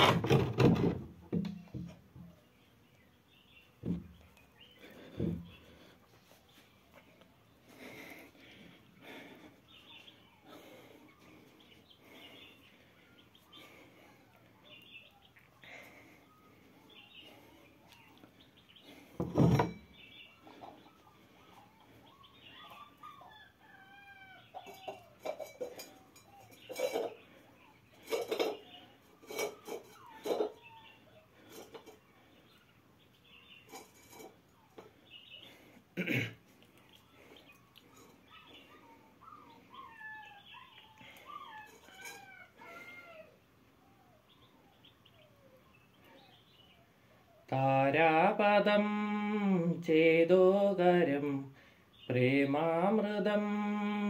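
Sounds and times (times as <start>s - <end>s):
rooster crowing: 23.2s - 25.2s, 41.6s - 43.4s.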